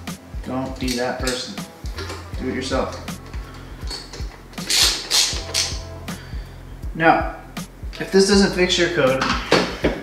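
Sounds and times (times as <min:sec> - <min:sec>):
background music with steady beat: 0:00.0 - 0:10.0
hand ratchet clicking: 0:02.9 - 0:05.8.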